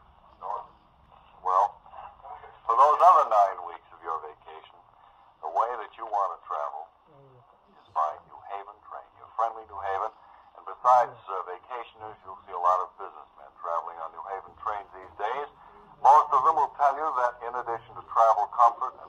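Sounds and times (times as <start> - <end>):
radio advertisement voice: 0.3 - 6.9, 7.8 - 19.0.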